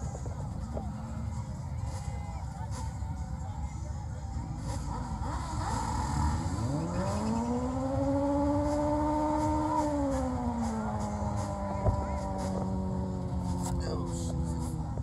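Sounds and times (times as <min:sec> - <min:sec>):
vehicle engine revving: 0:04.4 - 0:15.0.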